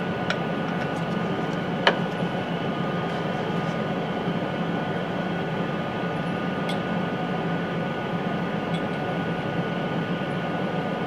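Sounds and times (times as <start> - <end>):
fan hum: 0.0 - 11.0.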